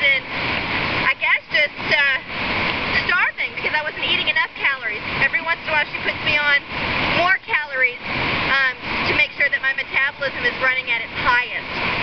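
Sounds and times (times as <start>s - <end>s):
woman talking: 0.0s - 0.2s, 1.0s - 2.3s, 3.0s - 11.7s
river water rushing: 0.0s - 12.0s.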